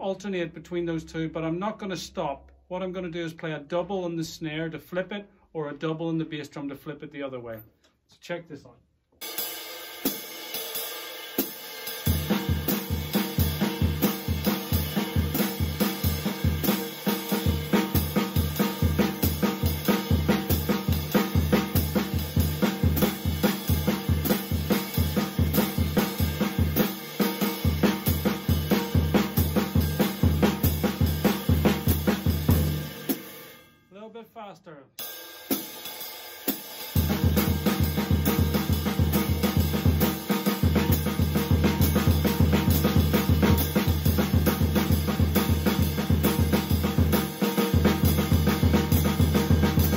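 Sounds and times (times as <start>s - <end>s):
snare drum: 9.2s - 33.2s, 35.4s - 49.9s
ride cymbal swing rhythm: 9.2s - 33.6s, 35.0s - 49.9s
bass drum: 12.1s - 33.2s, 36.9s - 49.9s.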